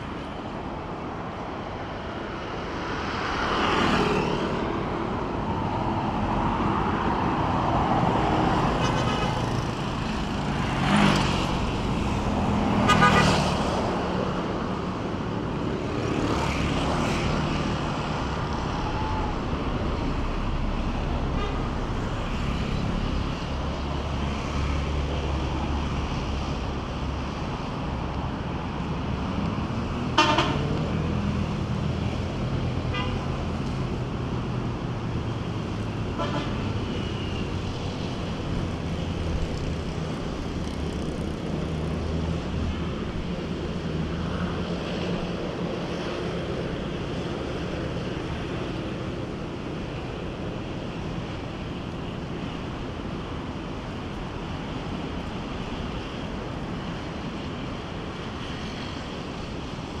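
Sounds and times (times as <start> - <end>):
traffic noise: 0.0 - 60.0.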